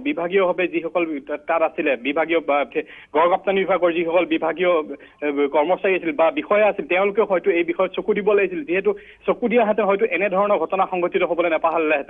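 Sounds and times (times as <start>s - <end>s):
man talking over telephone: 0.0s - 12.0s.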